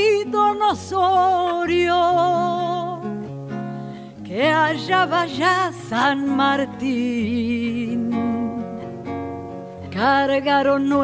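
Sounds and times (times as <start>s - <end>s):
classical guitar strumming chords: 0.0s - 11.0s.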